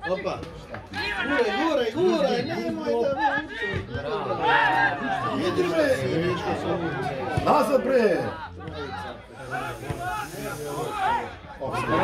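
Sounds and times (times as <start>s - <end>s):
men talking and shouting: 0.0s - 12.0s
steady hiss: 9.4s - 11.2s.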